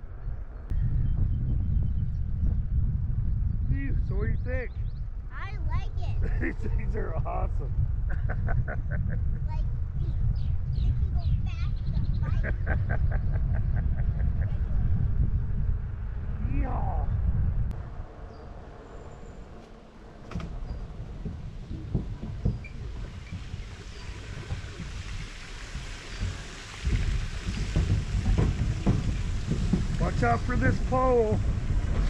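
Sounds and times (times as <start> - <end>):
wind rumble on microphone: 0.0 - 32.0
person laughing: 6.2 - 7.2, 8.1 - 9.5, 12.2 - 14.8
tyres knocking over wooden planks: 20.3 - 32.0.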